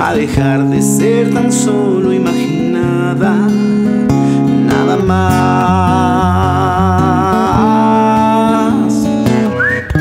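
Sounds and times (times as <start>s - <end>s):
acoustic guitar strumming: 0.0s - 10.0s
man whistling a melody: 9.2s - 10.0s.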